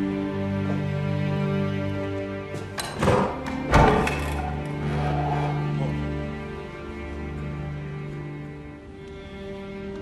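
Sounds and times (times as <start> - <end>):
orchestral strings: 0.0 - 10.0.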